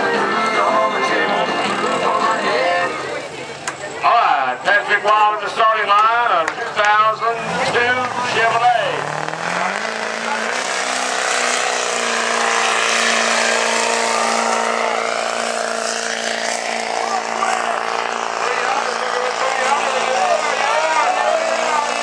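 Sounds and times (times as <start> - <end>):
diesel truck engine revving: 0.0 - 22.0.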